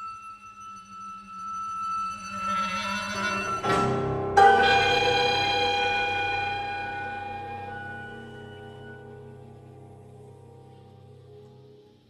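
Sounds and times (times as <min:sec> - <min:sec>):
lower sustained note: 0:00.0 - 0:12.0
chamber ensemble holding high note: 0:04.4 - 0:09.9.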